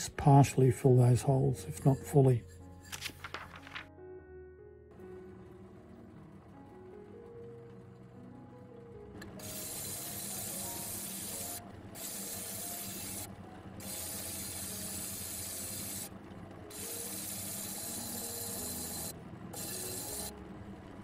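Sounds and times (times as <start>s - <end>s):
lap grinder gritty hiss: 9.4s - 16.1s.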